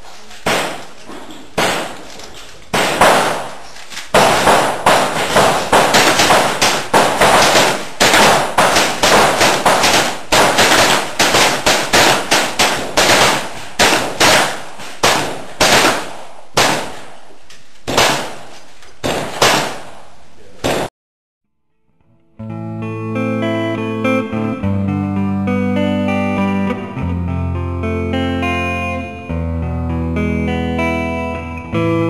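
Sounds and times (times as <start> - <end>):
lever-action rifle shots: 1.6 - 17.2, 17.8 - 20.0.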